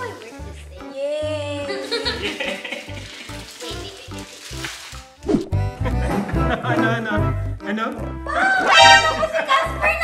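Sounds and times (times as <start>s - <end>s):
plastic packaging crinkling: 1.8s - 5.3s
background music with steady beat: 5.4s - 10.0s.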